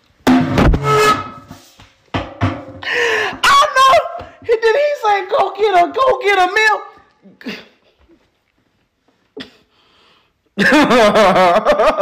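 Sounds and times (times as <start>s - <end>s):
man laughing loudly: 10.6s - 12.0s.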